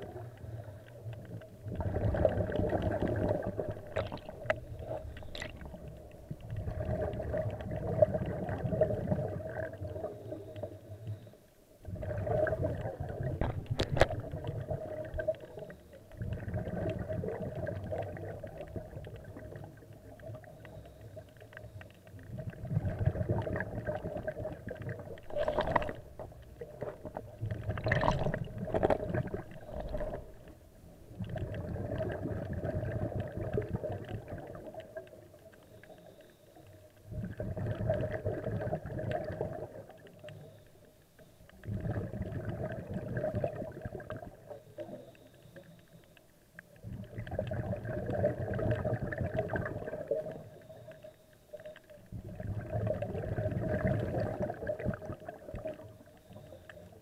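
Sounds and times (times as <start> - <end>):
underwater breath bubbling: 0.0 - 35.0, 35.8 - 40.7, 41.5 - 45.8, 46.8 - 51.1, 52.1 - 57.0.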